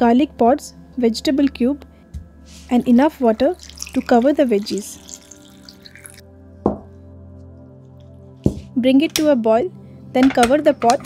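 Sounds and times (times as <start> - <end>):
background music: 0.0 - 11.0
water pouring into metal pot: 3.3 - 6.2
water drop plopping: 3.6 - 6.2.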